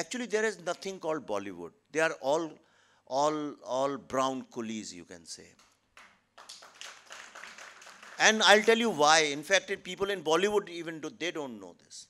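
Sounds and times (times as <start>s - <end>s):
faint audience clapping: 5.6s - 9.5s.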